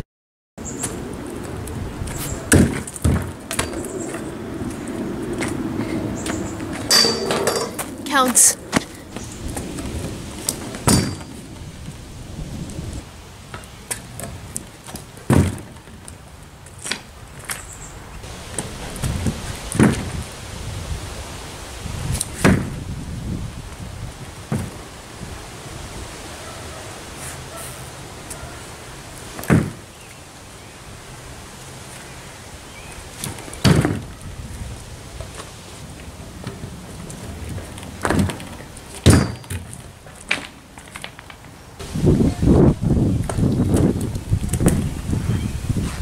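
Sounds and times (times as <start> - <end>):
scooter wheels rumbling: 0.6 - 21.0, 31.2 - 46.0
scooter landing thuds on plywood: 2.5 - 3.8, 14.2 - 16.0, 19.2 - 20.2, 22.4 - 22.8, 24.5 - 24.8, 29.4 - 29.8, 33.2 - 34.1, 38.0 - 39.7.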